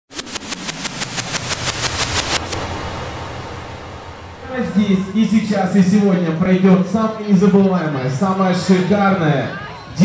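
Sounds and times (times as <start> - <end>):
low tone sliding down: 0.1 - 7.0.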